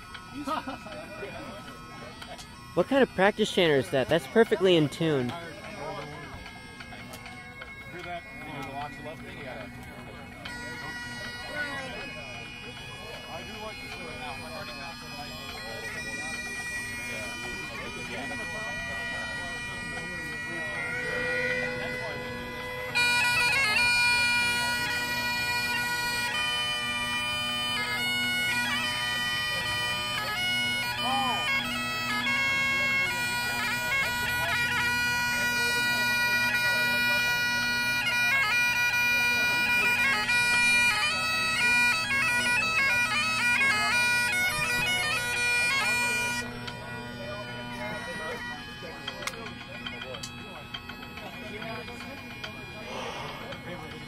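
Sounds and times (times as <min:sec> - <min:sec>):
bagpipe chanter melody: 0:00.0 - 0:54.0
bagpipe drones: 0:00.0 - 0:54.0.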